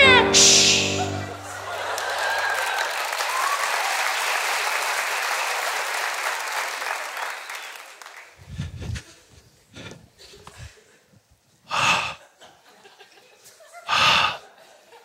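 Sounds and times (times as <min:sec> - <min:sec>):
audience applauding: 0:01.1 - 0:08.4.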